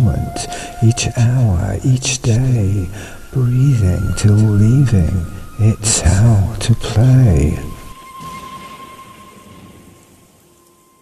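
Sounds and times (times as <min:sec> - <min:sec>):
faint steady high tone: 0:00.0 - 0:11.0.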